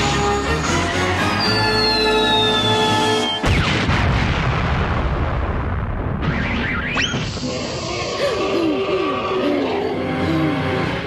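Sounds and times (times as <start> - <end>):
falling whistle-like tones: 1.3 - 3.5
rising whistle swoop: 1.4 - 3.5.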